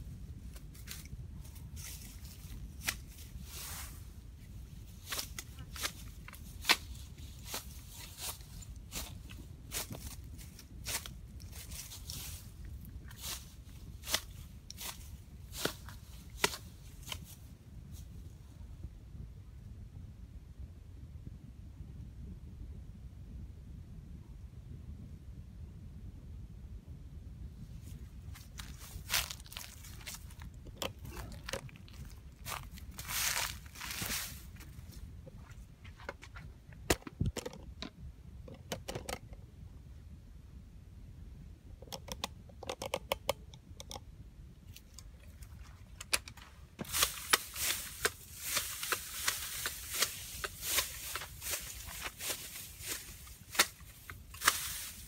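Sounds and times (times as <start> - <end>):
low background hum: 0.0 - 55.0
dry grass stalks snapping: 0.5 - 4.0, 4.9 - 17.4, 28.3 - 34.8, 44.7 - 55.0.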